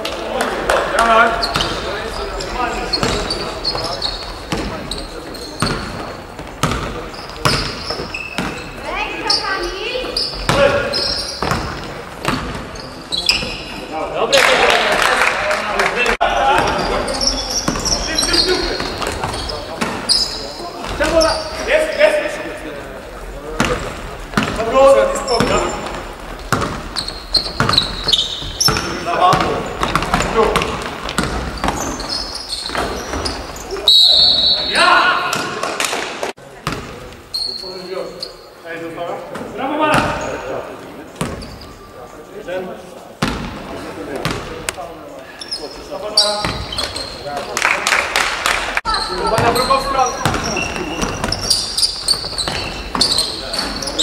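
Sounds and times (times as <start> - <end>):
sneakers squeaking: 0.0 - 14.2, 16.3 - 42.3, 43.0 - 47.5, 48.8 - 54.0
basketball bouncing on wooden floor: 4.5 - 4.8, 5.6 - 8.6, 10.0 - 12.7, 23.6 - 24.7, 25.4 - 33.4, 49.3 - 53.8
players calling out: 16.1 - 36.3.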